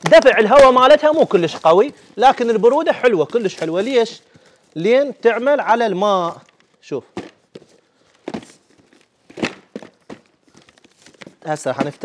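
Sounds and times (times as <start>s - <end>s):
cardboard boxes scuffing and knocking: 7.1s - 12.0s.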